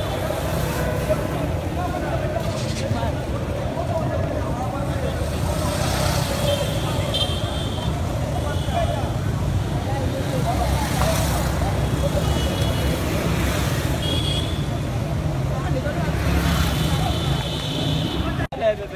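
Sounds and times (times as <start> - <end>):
motorcycles riding past: 0.0 - 14.0
people's voices: 0.0 - 18.9.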